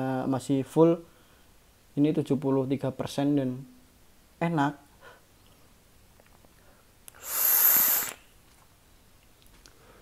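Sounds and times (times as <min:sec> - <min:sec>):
hissing draw through vape: 0:07.1 - 0:08.2.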